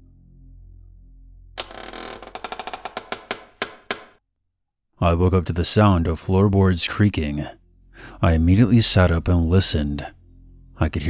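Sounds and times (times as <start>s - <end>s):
floorboard creaking: 1.6s - 4.2s.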